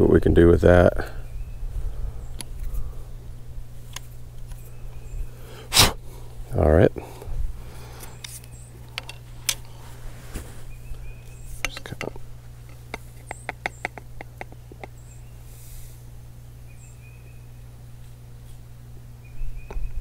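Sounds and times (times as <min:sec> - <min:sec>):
steady low hum: 0:00.0 - 0:20.0
small birds chirping: 0:00.8 - 0:20.0.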